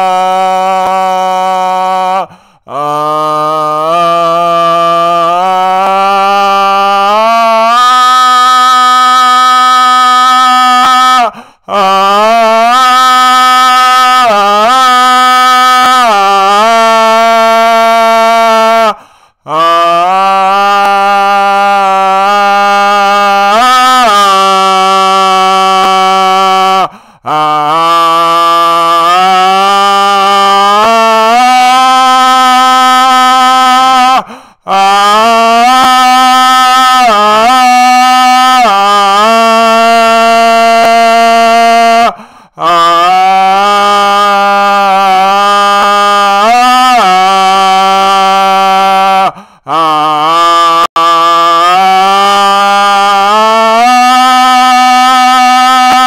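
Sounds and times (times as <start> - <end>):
man singing wordless chant: 0.0 - 56.0.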